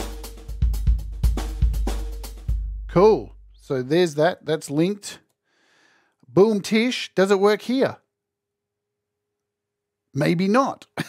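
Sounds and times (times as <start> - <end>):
drum machine beat: 0.0 - 3.7.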